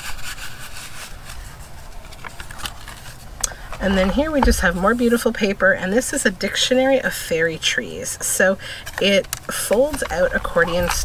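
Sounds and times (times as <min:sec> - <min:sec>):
hands rubbing over paper: 0:00.0 - 0:05.3
paper sliding and rustling: 0:00.0 - 0:05.3.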